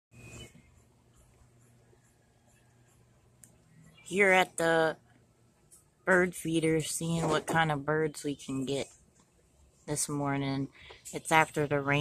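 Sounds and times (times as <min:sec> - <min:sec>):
faint low hum: 0:00.2 - 0:12.0.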